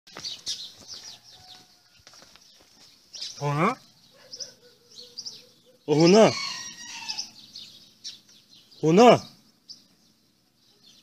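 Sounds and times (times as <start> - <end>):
small birds chirping: 0.1 - 11.0.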